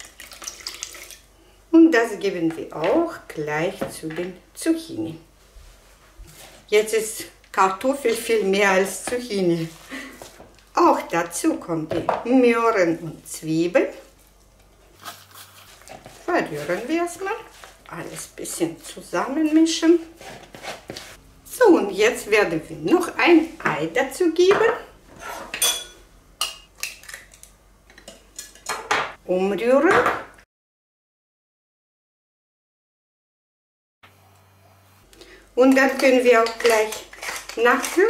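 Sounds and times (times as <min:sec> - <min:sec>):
person speaking: 0:16.2 - 0:20.1
spatula scraping plastic bowl: 0:20.1 - 0:21.2.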